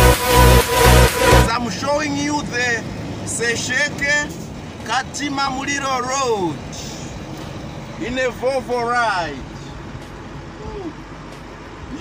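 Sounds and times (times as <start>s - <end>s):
road noise: 0.0s - 12.0s
truck engine drone: 0.0s - 12.0s
man talking: 1.5s - 7.0s, 8.0s - 9.5s.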